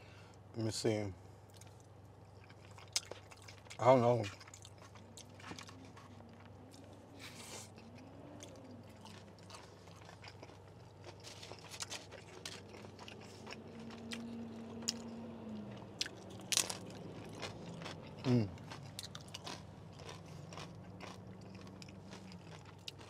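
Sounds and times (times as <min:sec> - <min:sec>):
person chewing food: 0:01.5 - 0:23.0
crisp crunches: 0:08.5 - 0:14.3.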